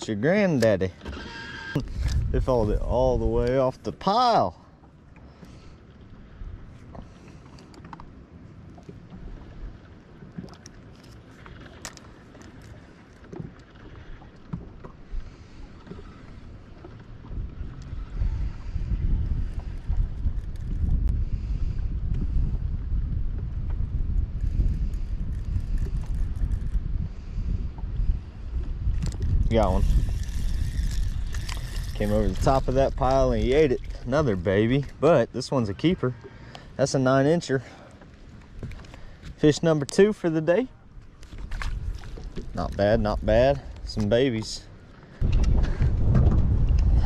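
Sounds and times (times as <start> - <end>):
wind buffeting microphone: 1.8 - 4.0, 13.3 - 36.4, 40.8 - 47.0.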